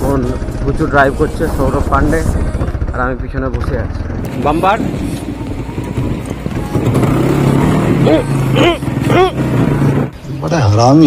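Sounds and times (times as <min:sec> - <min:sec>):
motorcycle engine running: 0:00.0 - 0:10.8.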